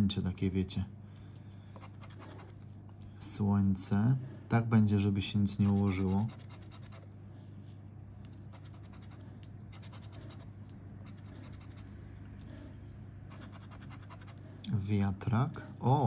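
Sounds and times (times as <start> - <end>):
low steady hum: 0.0 - 16.0
scratch card scraping: 5.5 - 7.0, 8.5 - 10.5, 11.1 - 11.9, 13.3 - 14.4.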